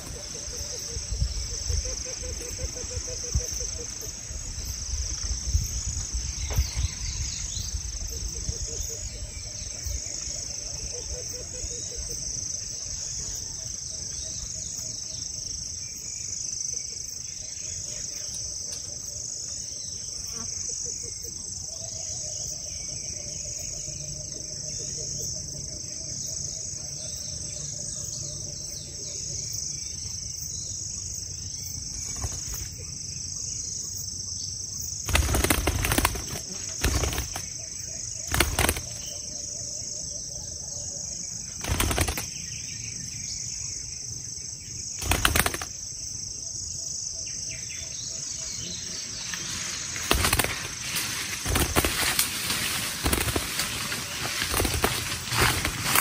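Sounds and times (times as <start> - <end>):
dove beating its wings: 0.0 - 0.8, 31.9 - 32.8, 35.0 - 37.6, 38.2 - 39.2, 41.6 - 42.4, 45.0 - 45.8, 49.8 - 56.0
high drone of insects: 0.0 - 56.0.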